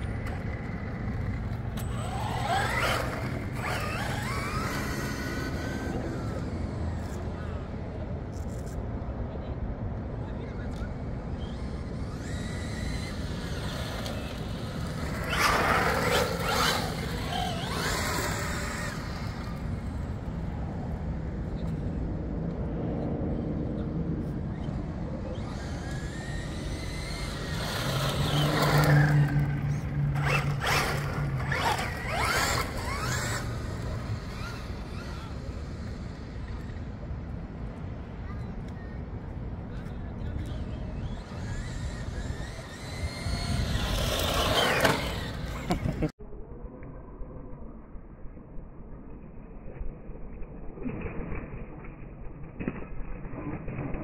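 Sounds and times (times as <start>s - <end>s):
rc truck motor whining: 0.0s - 7.4s, 10.8s - 20.4s, 24.2s - 37.1s, 40.2s - 46.1s.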